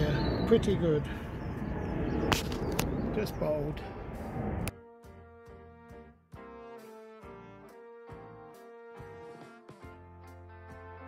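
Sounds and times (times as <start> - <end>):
low outdoor rumble: 0.0 - 4.7.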